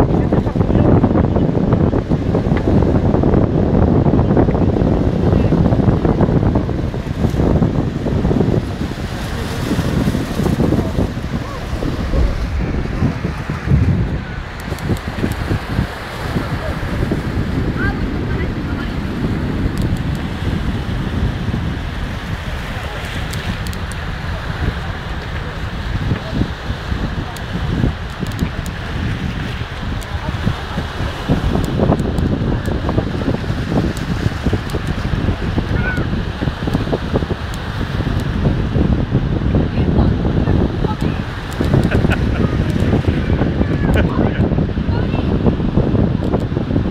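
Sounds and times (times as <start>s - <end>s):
wind buffeting microphone: 0.0s - 46.9s
small waves breaking on beach: 1.9s - 46.9s.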